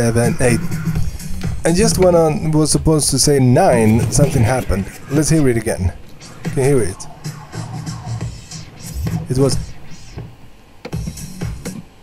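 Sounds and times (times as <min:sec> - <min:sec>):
record scratch: 0:00.0 - 0:02.2, 0:03.4 - 0:11.9
house music with kick beat: 0:06.2 - 0:12.0.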